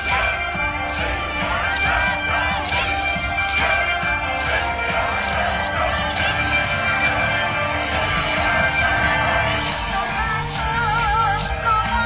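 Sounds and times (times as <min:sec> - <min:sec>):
upbeat dance music: 0:00.0 - 0:12.0
wooden clappers clacking: 0:00.0 - 0:12.0.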